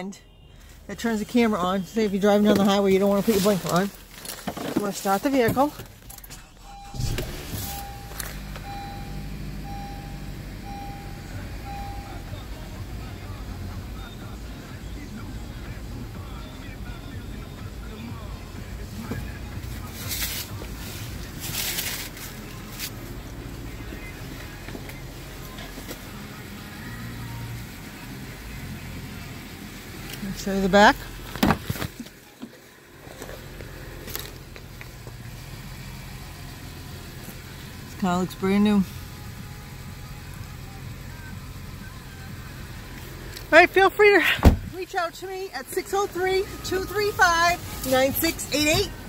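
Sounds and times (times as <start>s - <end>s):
car engine starting and idling: 0.0s - 49.0s
chime beeping: 6.6s - 12.2s.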